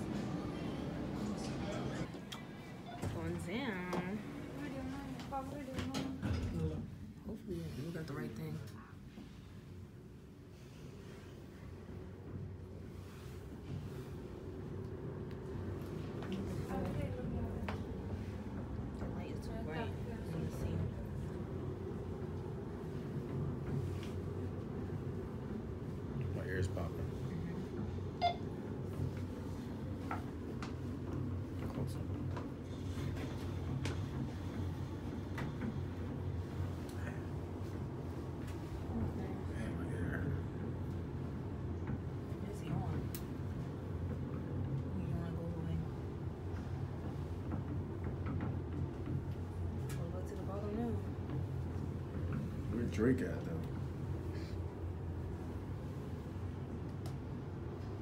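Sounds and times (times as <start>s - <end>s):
elevator car humming: 0.0s - 7.8s, 8.9s - 58.0s.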